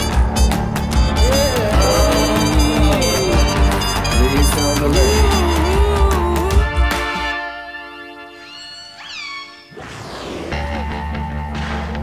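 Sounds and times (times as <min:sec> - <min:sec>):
killer whale calls: 0:08.2 - 0:09.8.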